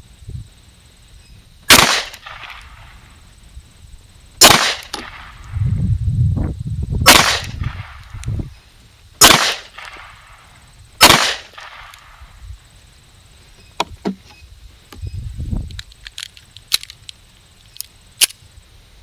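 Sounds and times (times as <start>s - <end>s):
pistol shots with echo: 1.7s - 2.9s, 4.4s - 5.4s, 7.1s - 8.0s, 9.2s - 10.2s, 11.0s - 11.9s.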